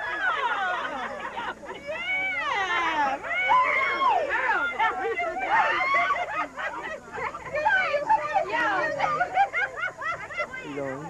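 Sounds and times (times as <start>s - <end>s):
people squealing excitedly: 1.8s - 6.5s.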